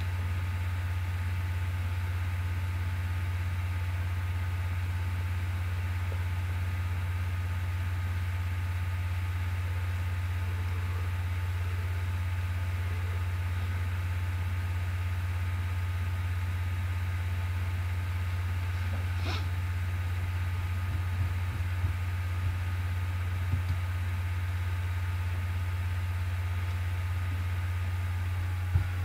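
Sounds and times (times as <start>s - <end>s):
steady low hum with hiss: 0.0s - 29.0s.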